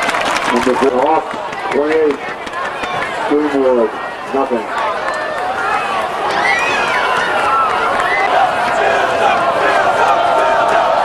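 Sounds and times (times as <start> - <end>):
football crowd noise: 0.0 - 11.0.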